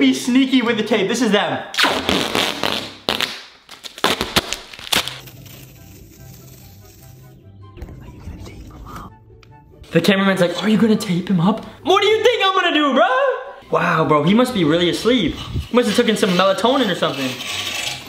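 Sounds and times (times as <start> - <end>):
duct tape ripping off roll: 1.8 - 7.4.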